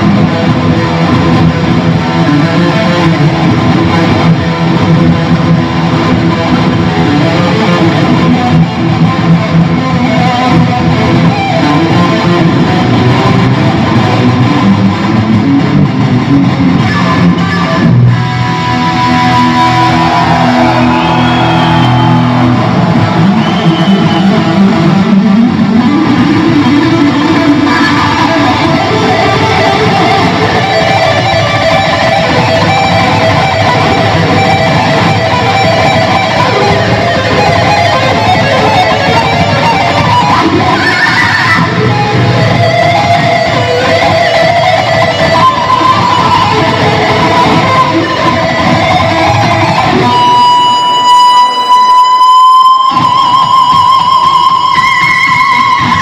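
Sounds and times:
electric guitar solo: 0:00.0 - 0:56.0.

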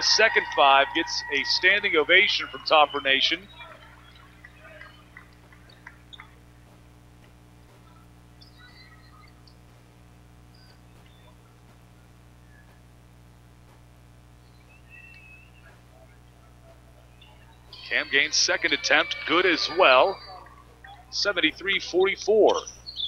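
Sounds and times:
electrical hum: 0:00.0 - 0:23.0
faint basketball arena sounds: 0:00.0 - 0:23.0.

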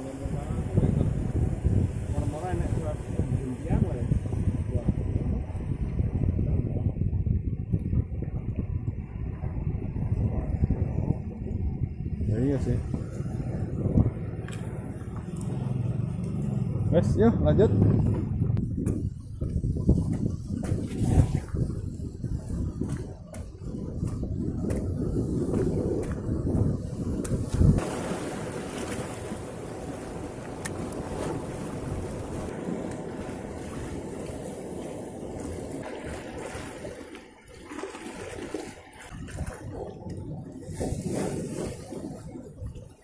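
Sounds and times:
surf washing over rocks: 0:00.0 - 0:05.8, 0:20.6 - 0:43.0
low rumbling: 0:00.0 - 0:36.0.

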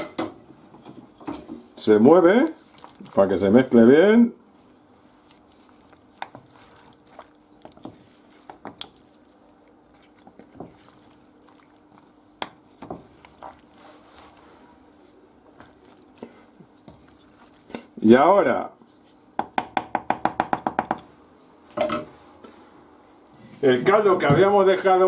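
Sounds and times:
wet squelches of seafood: 0:02.3 - 0:18.0.

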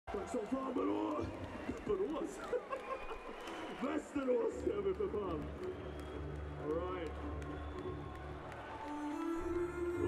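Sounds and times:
concert music through pa: 0:05.6 - 0:10.0.

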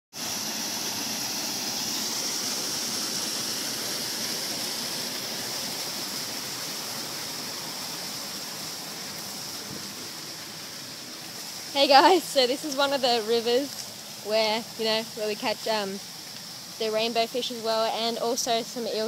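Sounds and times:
waterfall splashing over rocks: 0:00.1 - 0:19.0.

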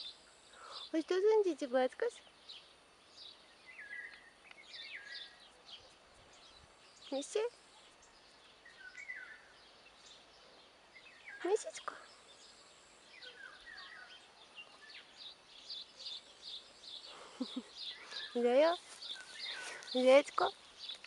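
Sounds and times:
birds chirping and singing: 0:02.0 - 0:21.0.

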